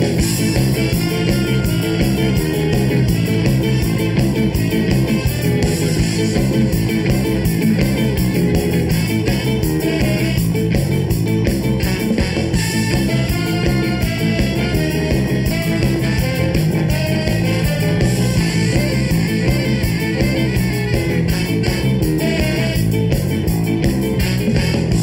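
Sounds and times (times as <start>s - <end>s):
bass: 0.0s - 25.0s
drums: 0.0s - 25.0s
electric guitar: 0.0s - 25.0s
tenor saxophone melody: 0.0s - 25.0s.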